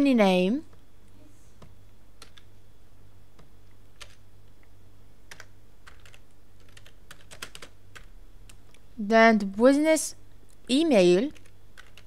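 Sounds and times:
steady low hum: 0.0s - 12.0s
keyboard keystrokes: 5.3s - 8.6s, 11.3s - 12.0s.

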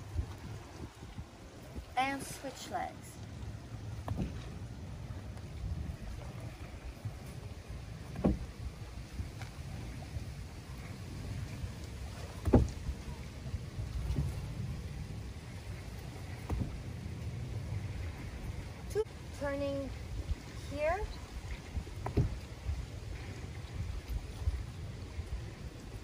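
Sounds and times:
low rumble: 2.9s - 26.0s.

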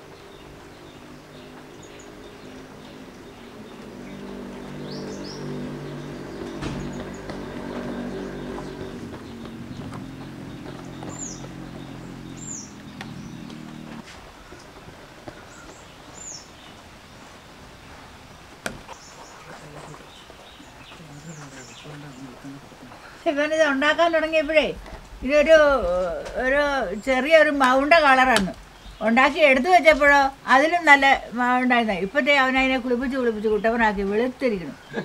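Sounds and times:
birds chirping: 0.0s - 35.0s.

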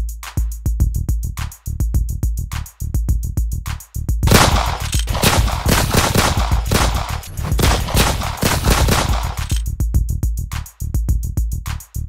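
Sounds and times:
rapid gunfire: 4.3s - 9.6s.

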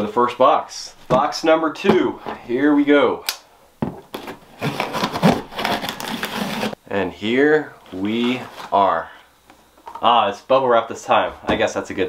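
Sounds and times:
plastic wrap and tape crackling: 4.2s - 6.8s.

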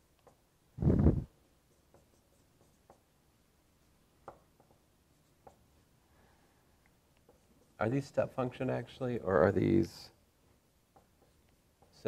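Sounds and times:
marker writing on whiteboard: 1.5s - 3.2s, 3.8s - 5.9s, 7.2s - 8.2s, 10.8s - 12.0s.

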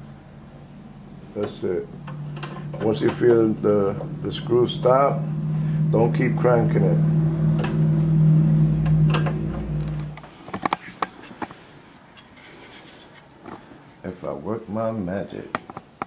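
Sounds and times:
steady low hum: 0.0s - 12.2s
clicks and knocks of handling: 15.5s - 16.0s.

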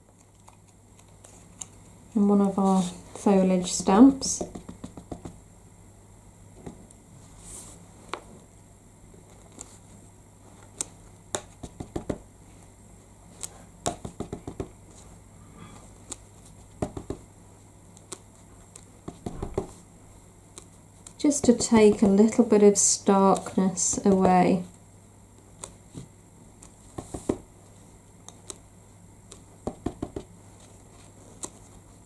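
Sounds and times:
faint steady hum: 0.0s - 32.0s
ink pad tapping on rubber stamp: 3.8s - 5.4s, 11.3s - 12.2s, 13.8s - 14.8s, 16.8s - 17.2s, 19.0s - 19.8s, 26.9s - 27.5s, 29.3s - 30.3s.

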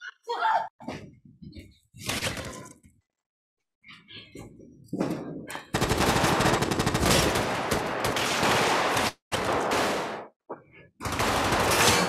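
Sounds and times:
automatic gunfire: 5.7s - 10.3s, 11.0s - 12.0s.

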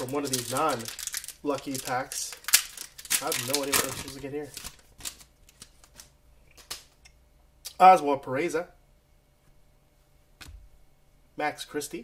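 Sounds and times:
foil and cards crinkling: 0.0s - 6.8s.

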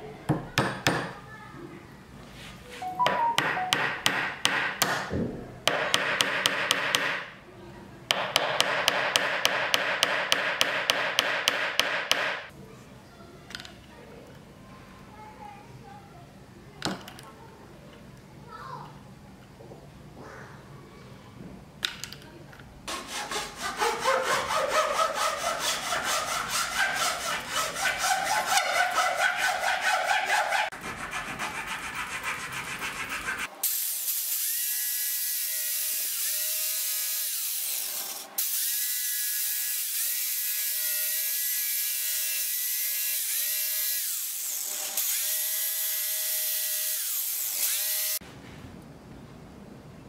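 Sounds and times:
jigsaw sawing wood: 22.9s - 33.5s.

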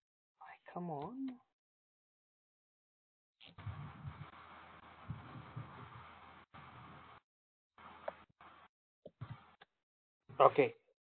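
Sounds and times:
dull low thumps: 3.6s - 7.2s.

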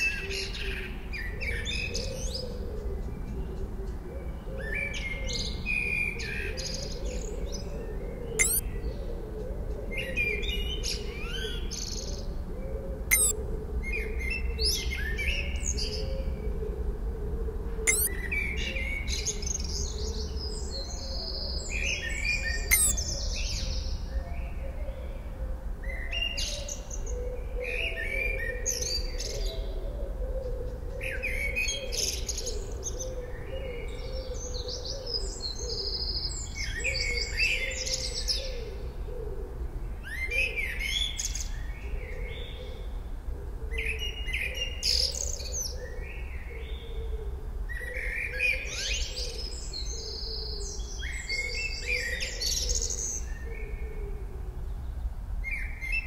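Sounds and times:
small birds chirping: 5.4s - 8.9s, 13.1s - 13.4s, 17.9s - 18.2s, 19.1s - 24.0s.

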